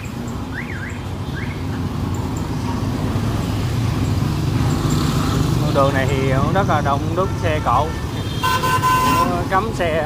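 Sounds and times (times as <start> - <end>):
city traffic: 0.0 - 10.0.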